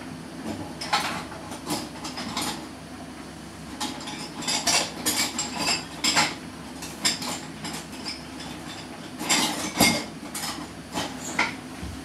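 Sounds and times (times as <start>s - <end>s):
dishes and utensils clinking: 3.8s - 11.6s.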